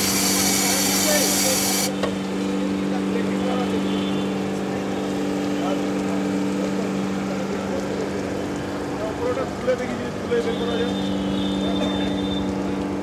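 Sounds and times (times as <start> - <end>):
hose spraying water: 0.0 - 2.5
pump humming: 0.0 - 9.0.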